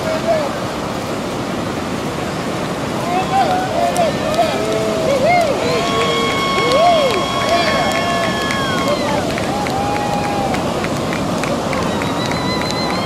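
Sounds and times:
ocean surf washing in: 0.0s - 13.0s
people's voices and cheering: 2.7s - 13.0s.

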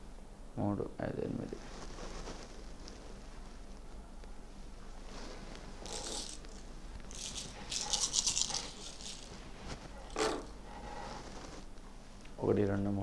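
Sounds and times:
shells rattling and clicking: 5.9s - 9.4s.

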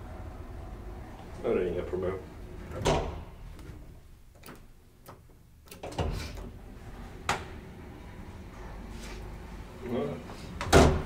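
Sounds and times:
lift machinery hum: 0.0s - 4.6s, 5.6s - 10.7s.

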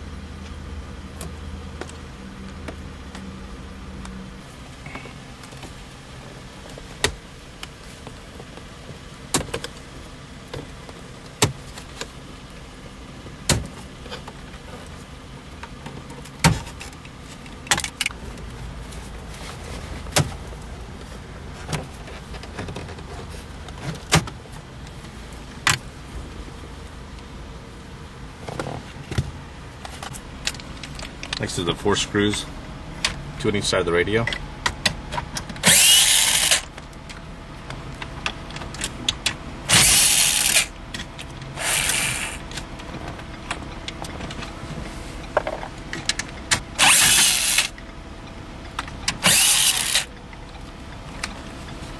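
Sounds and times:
steady background noise: 0.0s - 51.9s.

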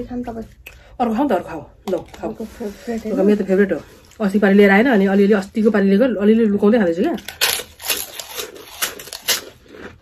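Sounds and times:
woman talking: 0.0s - 7.2s.

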